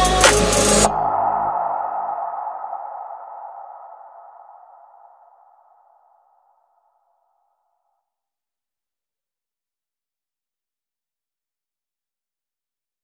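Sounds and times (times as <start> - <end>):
mid-pitched synth tone: 0.0 - 2.2.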